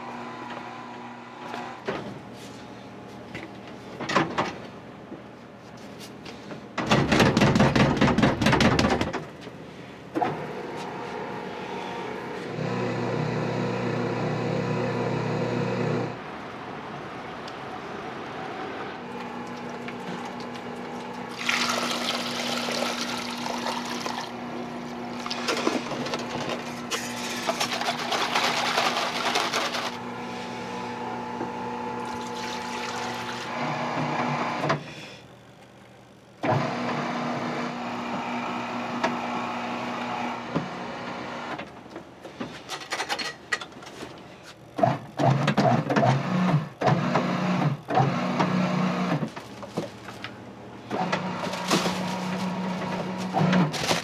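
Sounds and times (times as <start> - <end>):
dough mixer motor hum: 11.2 - 16.2, 19.0 - 34.7
liquid pouring with splash: 21.3 - 24.4.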